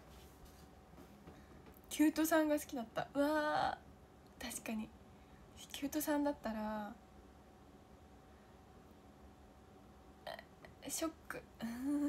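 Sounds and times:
woman speaking: 1.9 - 3.8, 4.4 - 4.9, 5.6 - 7.0, 10.3 - 12.0.

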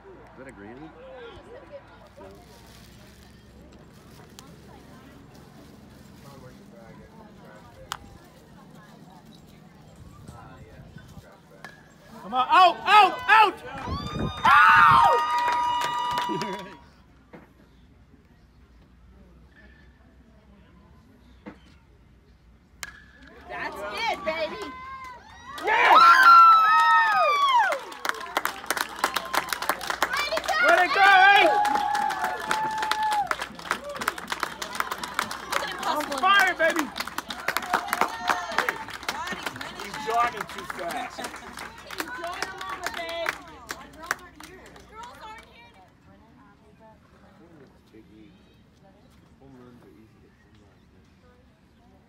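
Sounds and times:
faint spectator chatter: 0.0 - 13.9, 27.7 - 52.0
spectators cheering and yelling: 12.3 - 16.8, 23.4 - 41.2
people clapping: 13.6 - 16.9, 23.6 - 45.9.

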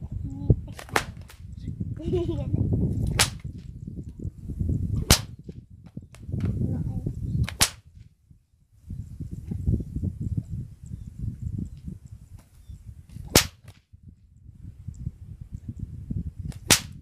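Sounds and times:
whip cracking: 0.7 - 1.5, 3.1 - 3.7, 5.0 - 5.4, 7.4 - 7.9, 13.2 - 13.8, 16.5 - 17.0.

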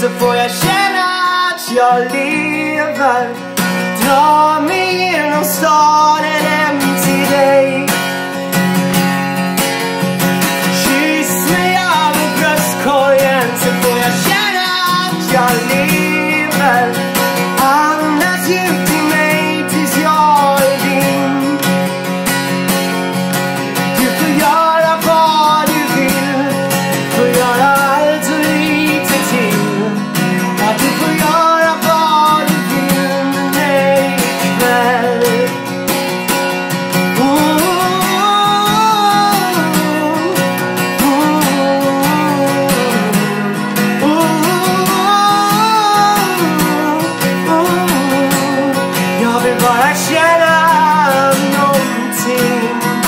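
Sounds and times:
man singing: 0.0 - 22.4, 23.4 - 53.0
strummed acoustic guitar: 0.0 - 53.0.

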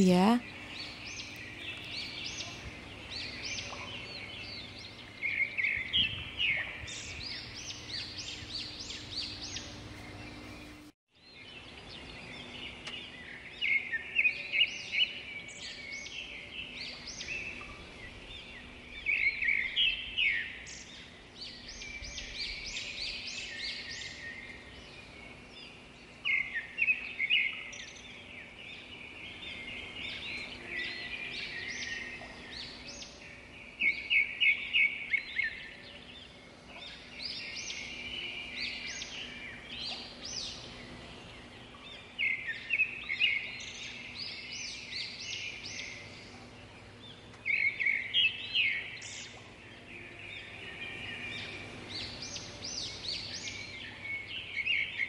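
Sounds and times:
birds twittering: 0.0 - 55.0.

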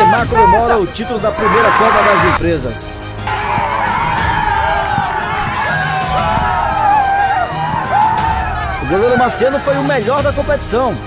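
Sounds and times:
people shouting and cheering: 0.0 - 2.4, 3.2 - 10.0
background music: 0.0 - 11.0.

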